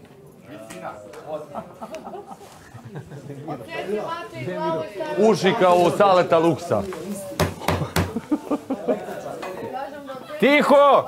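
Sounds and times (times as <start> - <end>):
group chatter: 0.0 - 11.0
sharp knocks: 7.4 - 8.2.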